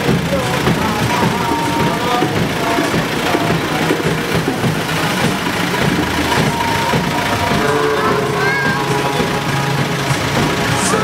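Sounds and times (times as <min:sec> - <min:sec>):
music playing: 0:00.0 - 0:11.0
truck engine running: 0:00.0 - 0:11.0.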